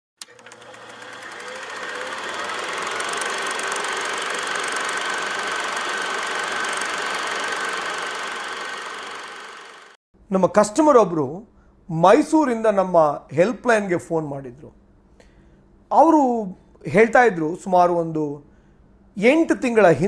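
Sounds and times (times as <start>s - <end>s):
film projector clattering: 0.2s - 10.0s.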